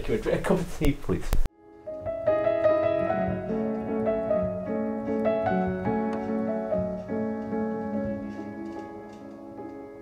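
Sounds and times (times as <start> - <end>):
slow piano music: 1.5 - 10.0.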